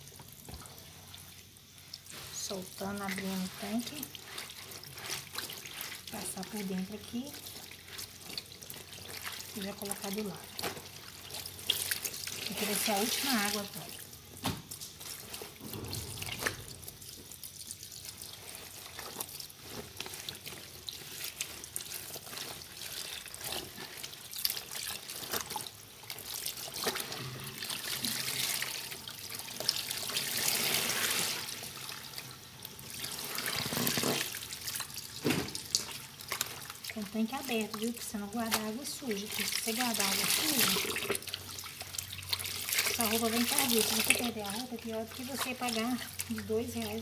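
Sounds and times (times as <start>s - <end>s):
water running into a tub: 0.0s - 47.0s
wet clothes sloshing: 0.3s - 47.0s
small water splashes: 1.0s - 47.0s.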